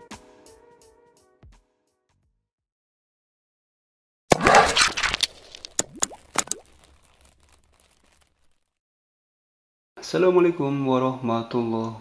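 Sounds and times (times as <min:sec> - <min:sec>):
synthetic pops: 0:04.3 - 0:07.9.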